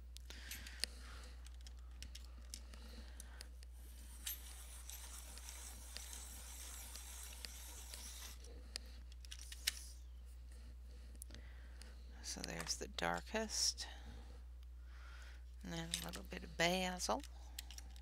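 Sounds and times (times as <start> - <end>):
pencil sharpener grinding: 3.8 - 8.5.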